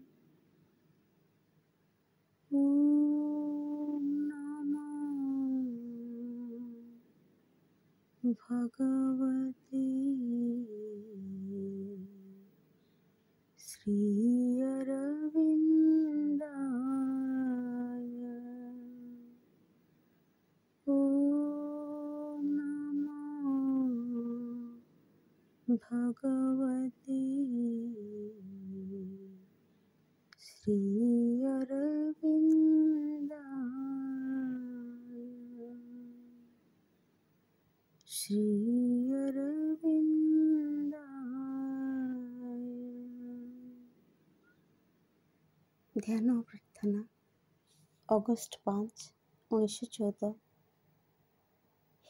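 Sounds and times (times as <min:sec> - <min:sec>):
woman humming: 0:32.5 - 0:36.4, 0:38.2 - 0:43.9.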